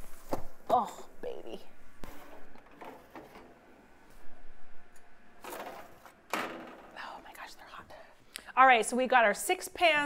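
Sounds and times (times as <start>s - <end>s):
baking sheet scraping wire rack: 2.0s - 3.6s, 5.4s - 6.9s.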